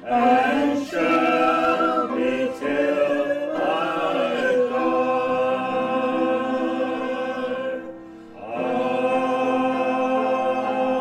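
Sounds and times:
people singing a hymn: 0.0 - 11.0.

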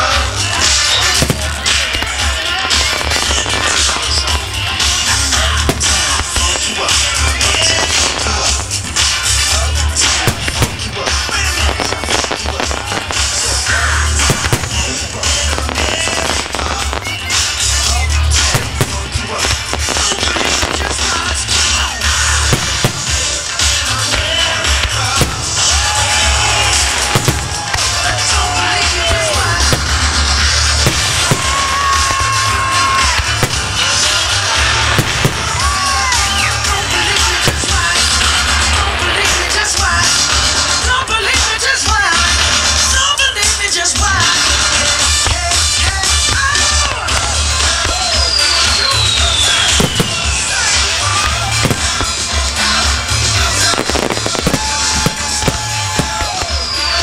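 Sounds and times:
fireworks bursting: 0.0 - 57.0
music with heavy bass: 0.0 - 57.0.

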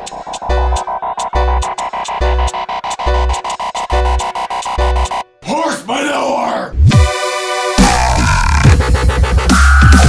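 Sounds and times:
dubstep beat: 0.0 - 5.3, 6.8 - 10.0
synthesized growl bass: 7.8 - 10.0.

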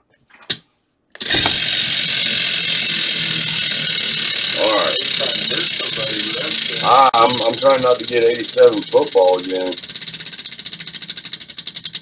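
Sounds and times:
prize wheel pegs clattering: 1.2 - 12.0.

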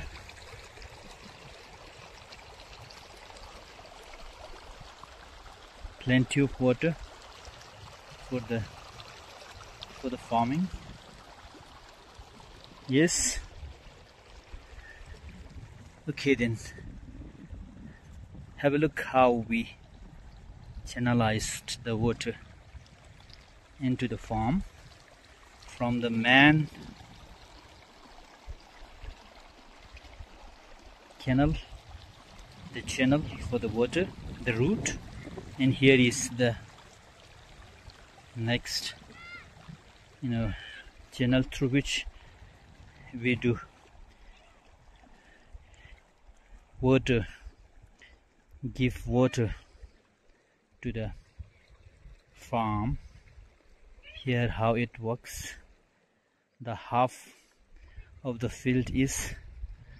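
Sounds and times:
water trickling in a channel: 0.0 - 56.6, 57.2 - 59.9.

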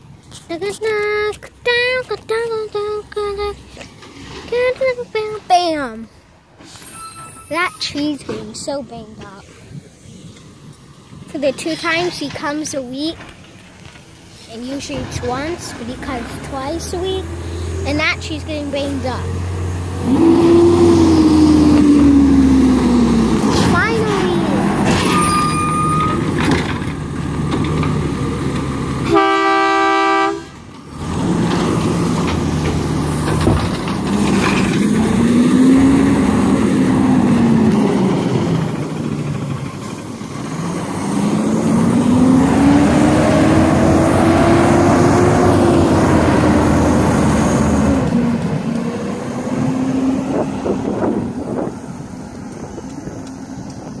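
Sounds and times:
garbage truck diesel engine: 0.0 - 54.0
truck horn honk: 29.0 - 30.6.

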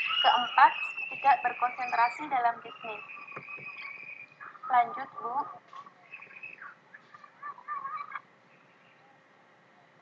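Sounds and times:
high bird chirps: 0.0 - 9.1
low background hiss: 0.0 - 10.0.

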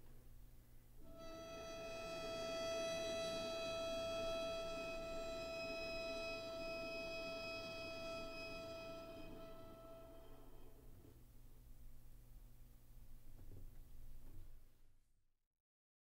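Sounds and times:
bowed string harmonic: 1.0 - 10.9.

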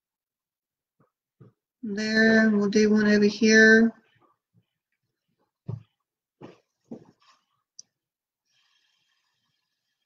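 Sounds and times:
breath blown through a straw: 8.5 - 10.0.

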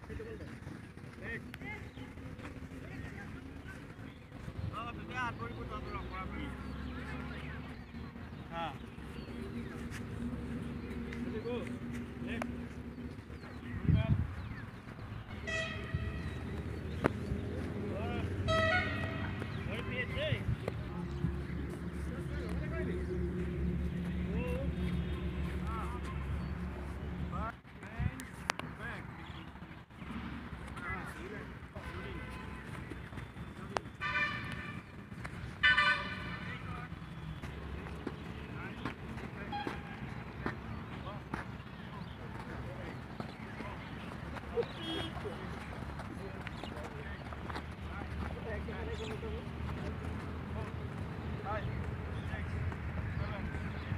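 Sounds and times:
distant overlapping voices: 0.0 - 53.9
horn honk: 15.3 - 16.6, 18.3 - 19.7, 33.9 - 34.9, 35.6 - 36.8, 39.4 - 40.2, 44.7 - 45.4
runners footfalls and knocks: 37.2 - 53.9.

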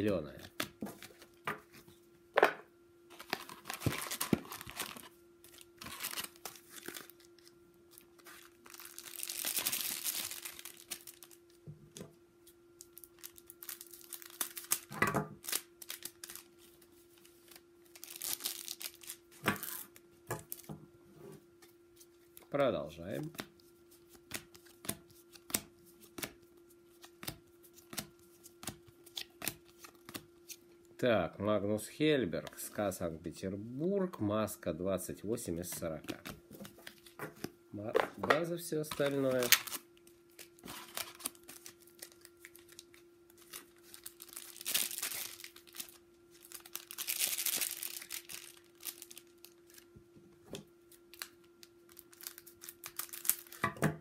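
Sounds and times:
wrappers torn and crinkled: 3.1 - 11.6, 12.8 - 20.6, 38.9 - 49.9, 50.9 - 53.7.

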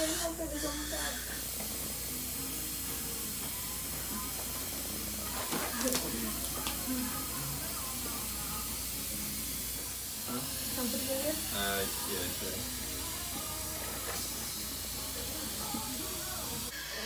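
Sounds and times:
dental suction hiss: 0.0 - 17.0.

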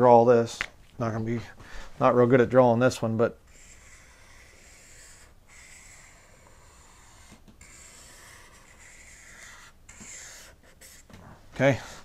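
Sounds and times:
marker rubbing on paper: 3.5 - 11.2.

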